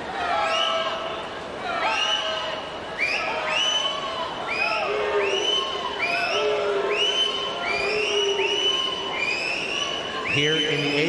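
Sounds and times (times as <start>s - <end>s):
crowd roar: 0.0s - 11.0s
shrill screams and whoops: 0.2s - 1.1s, 1.7s - 10.3s.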